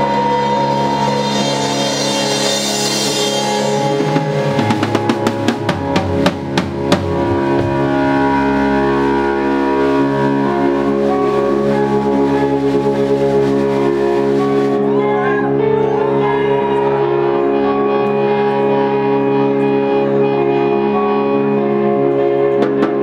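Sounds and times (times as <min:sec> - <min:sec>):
rock band playing live: 0:00.0 - 0:23.0
sharp drum hits: 0:01.4 - 0:08.1.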